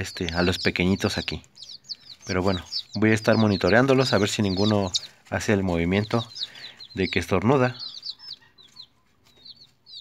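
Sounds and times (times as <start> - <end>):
baby chicks peeping: 0.0 - 10.0.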